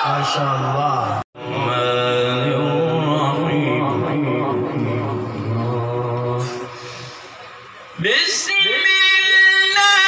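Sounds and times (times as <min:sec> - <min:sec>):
man reciting through microphone: 0:00.0 - 0:07.0, 0:08.0 - 0:10.0.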